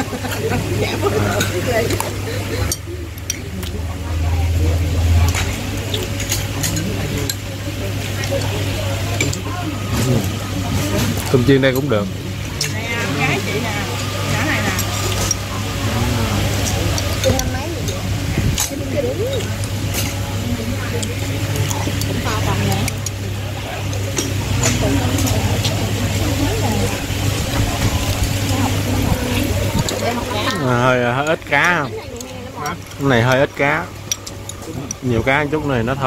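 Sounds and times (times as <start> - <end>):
steady low hum: 0.0 - 36.0
voices chattering: 0.0 - 36.0.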